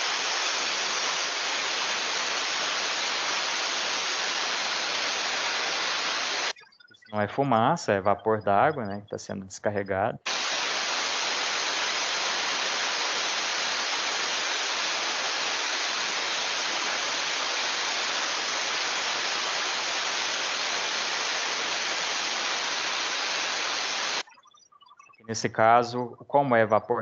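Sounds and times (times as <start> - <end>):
steam rushing from safety valve: 0.0 - 6.5, 10.3 - 24.2.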